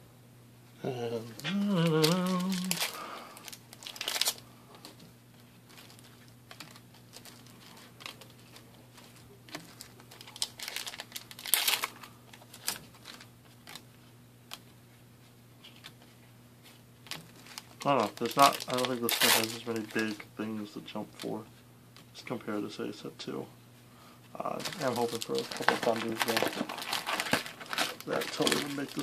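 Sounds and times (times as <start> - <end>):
faint low hum: 0.0 - 29.0
foil wrapper crinkling and tearing: 1.4 - 4.5, 5.4 - 13.9, 17.0 - 20.3, 24.4 - 29.0
trading cards being handled: 1.4 - 14.7, 24.4 - 29.0.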